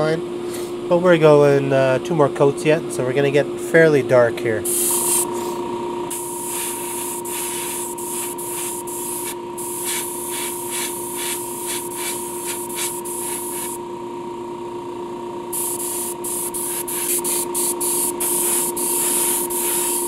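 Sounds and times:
steady hum: 0:04.0 - 0:20.0
airbrush hissing: 0:04.6 - 0:13.8, 0:15.5 - 0:20.0.

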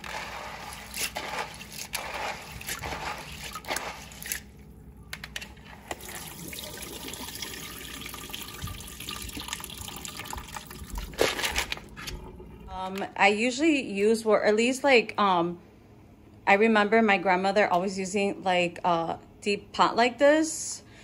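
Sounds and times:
beans splashing in water: 0:00.0 - 0:04.5
water running: 0:00.0 - 0:13.8.

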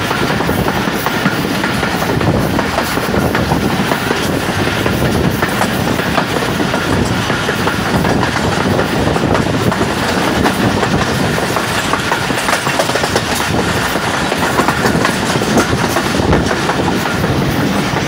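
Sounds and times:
rush of track and air noise: 0:00.0 - 0:18.0
train wheels clattering over rails: 0:00.0 - 0:18.0.

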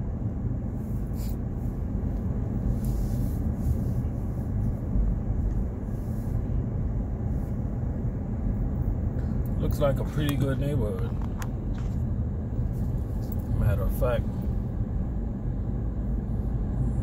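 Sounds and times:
car engine and tyre noise: 0:00.0 - 0:17.0.

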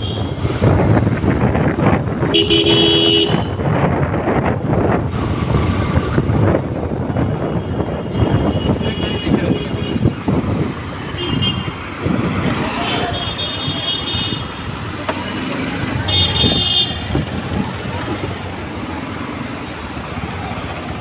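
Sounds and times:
passing traffic engines and tyres: 0:00.0 - 0:21.0
vehicle horns tooting: 0:02.3 - 0:03.7, 0:07.2 - 0:10.2, 0:11.1 - 0:11.8, 0:12.7 - 0:14.6, 0:16.0 - 0:17.2.

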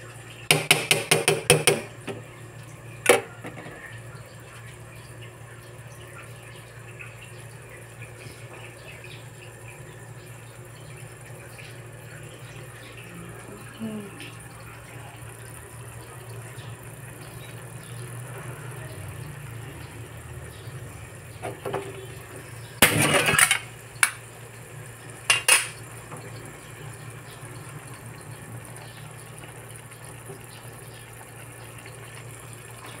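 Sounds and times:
kitchenware clinking: 0:22.8 - 0:24.2, 0:25.3 - 0:25.8.

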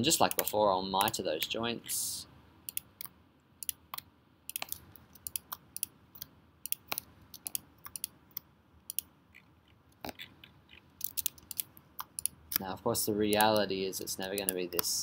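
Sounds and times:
mouse and keyboard clicks: 0:02.7 - 0:12.7, 0:14.2 - 0:14.9.

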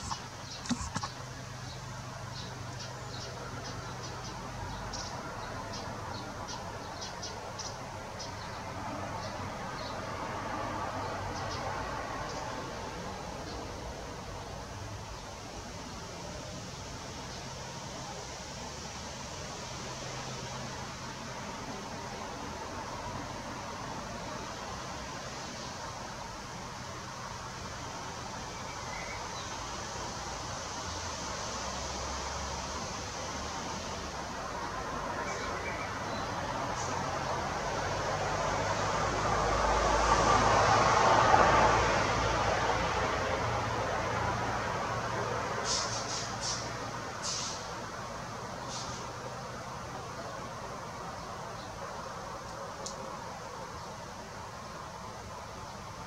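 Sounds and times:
outdoor background hiss: 0:00.0 - 0:56.0
distant vehicle passing: 0:35.9 - 0:47.0.

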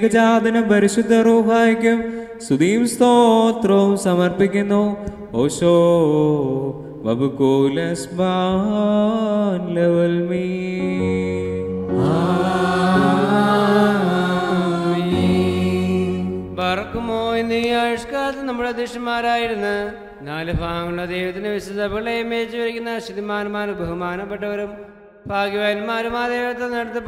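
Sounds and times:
liturgical chant: 0:00.0 - 0:21.8
higher singing voice: 0:10.3 - 0:18.5
held low notes: 0:10.5 - 0:18.2.

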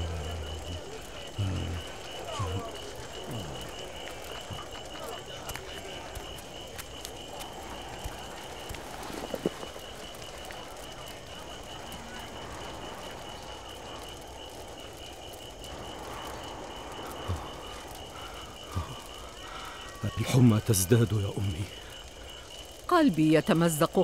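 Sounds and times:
campfire crackle: 0:00.0 - 0:24.0
pulsing chirping of night creatures: 0:00.0 - 0:24.0.

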